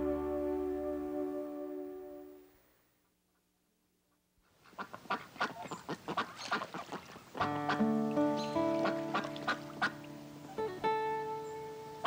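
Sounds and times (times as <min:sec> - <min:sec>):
soft music with held notes: 0:00.0 - 0:02.5, 0:07.4 - 0:12.0
geese honking and ducks quacking: 0:04.7 - 0:10.1.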